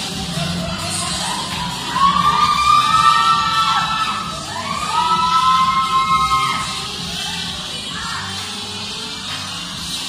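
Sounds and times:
people cheering and shrieking: 0:00.0 - 0:08.5
loud dance music: 0:00.0 - 0:10.0.

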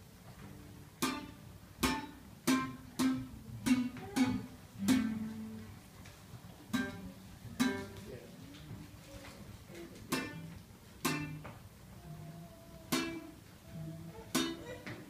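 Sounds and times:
classical guitar strummed chords: 0:00.5 - 0:05.9, 0:06.7 - 0:08.1, 0:10.0 - 0:15.0.

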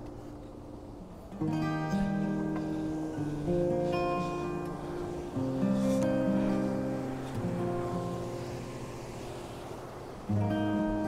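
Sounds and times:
slow instrumental music: 0:00.0 - 0:11.0.

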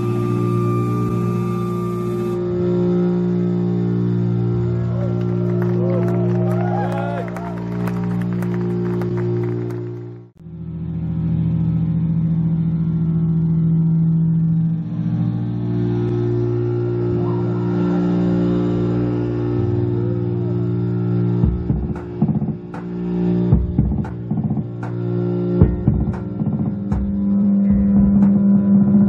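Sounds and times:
low bass and electronic drone: 0:00.0 - 0:29.0
picked bass guitar notes: 0:00.0 - 0:29.0.

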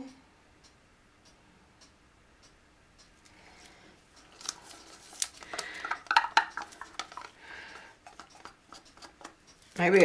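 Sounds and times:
plastic cup clicks and taps: 0:05.5 - 0:07.4
stick scraping plastic cup: 0:05.5 - 0:09.4.

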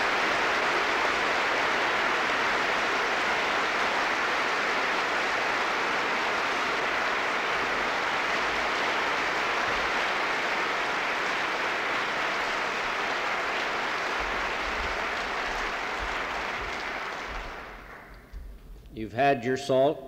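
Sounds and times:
large audience applauding: 0:00.0 - 0:18.3.

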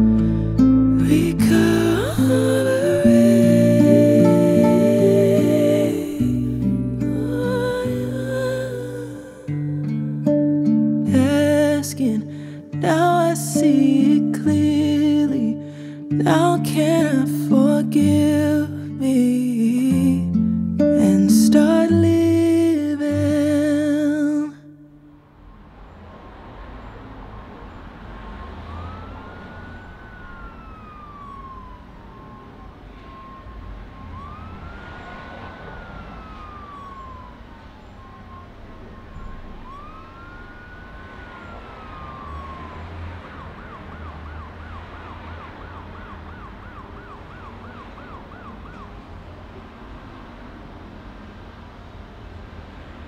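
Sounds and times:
emergency siren wailing and yelping: 0:00.0 - 0:10.3, 0:25.5 - 0:50.4
traffic rumble: 0:00.0 - 0:20.6, 0:21.8 - 0:53.0.

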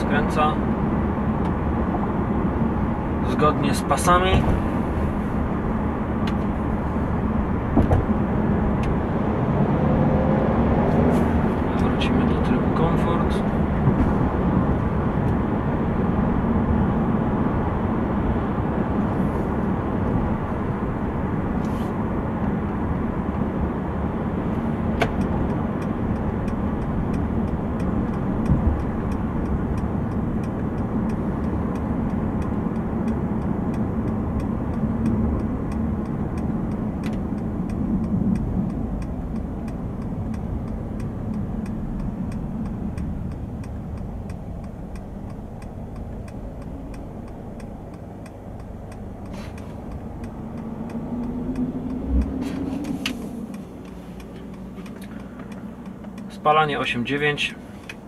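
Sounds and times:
diesel engine hum: 0:00.0 - 0:58.0
tyre and road noise: 0:00.0 - 0:58.0
sharp clicks: 0:25.0 - 0:56.4
faint regular ticking: 0:25.2 - 0:58.0.

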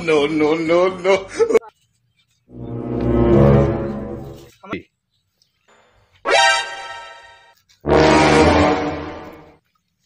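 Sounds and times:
deep horn-like tone: 0:02.6 - 0:04.4, 0:07.8 - 0:09.5.

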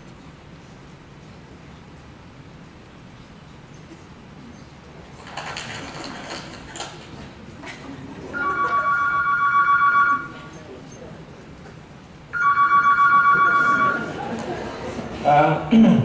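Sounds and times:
telephone ringing over loudspeakers: 0:08.3 - 0:10.6, 0:12.3 - 0:14.4.

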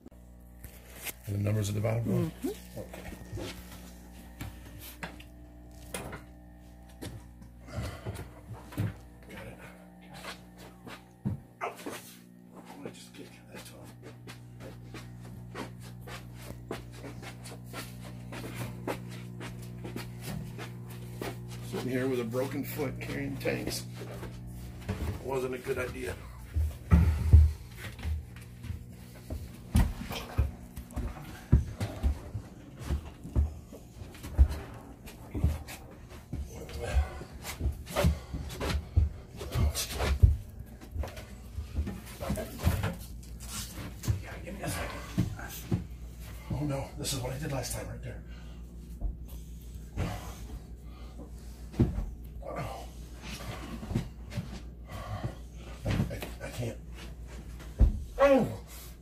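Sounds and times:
steady low hum: 0:00.0 - 0:59.0
footsteps: 0:00.4 - 0:46.7.

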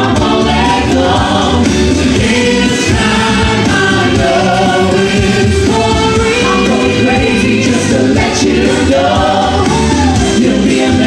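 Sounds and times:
group of singers singing: 0:00.0 - 0:11.0
live pop band accompaniment: 0:00.0 - 0:11.0.

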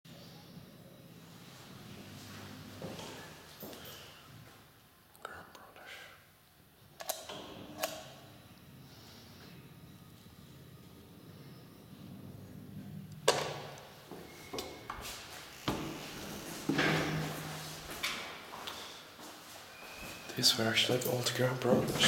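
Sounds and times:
elevator humming: 0:00.1 - 0:05.1, 0:06.6 - 0:22.0
elevator clunk: 0:13.1 - 0:15.0, 0:15.6 - 0:18.4.

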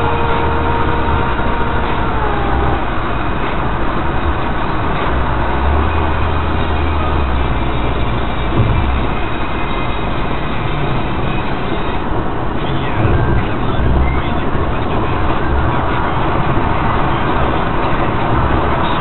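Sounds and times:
thin steady whine: 0:00.0 - 0:12.0
car road noise: 0:00.0 - 0:19.0.

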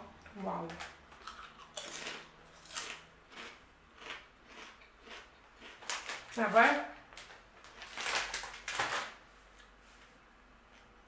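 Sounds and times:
foil snack bag crinkling: 0:05.6 - 0:09.2.

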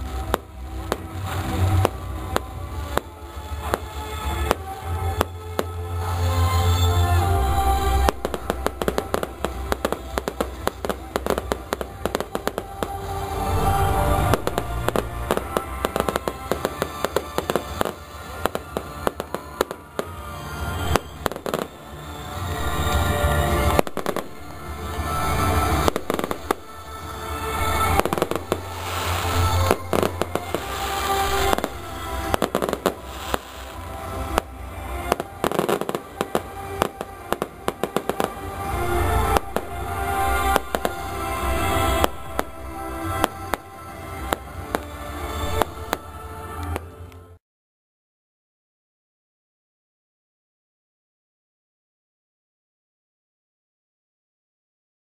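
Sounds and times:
fireworks bangs and crackles: 0:00.0 - 0:46.9
music: 0:00.0 - 0:47.4.

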